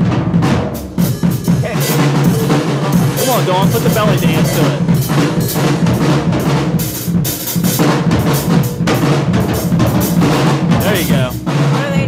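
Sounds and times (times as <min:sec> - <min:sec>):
drum kit solo: 0:00.0 - 0:12.0.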